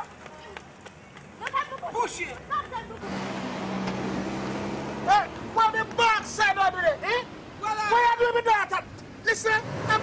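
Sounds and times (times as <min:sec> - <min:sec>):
person talking excitedly: 0:05.0 - 0:10.0.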